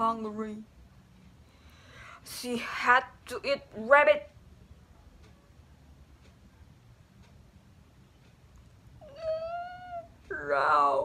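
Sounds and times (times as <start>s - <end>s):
woman whining: 9.0s - 11.0s.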